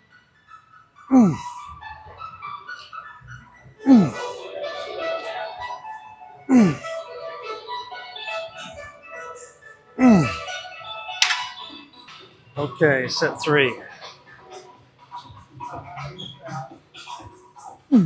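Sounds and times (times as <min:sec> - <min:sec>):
background music: 0:00.3 - 0:18.0
man grunting with effort: 0:01.1 - 0:01.4, 0:03.9 - 0:04.2, 0:06.5 - 0:06.9, 0:10.0 - 0:10.4.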